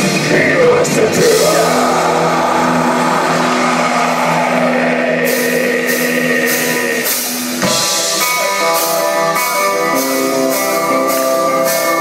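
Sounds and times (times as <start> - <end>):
metal band distorted chord: 0.0 - 12.0.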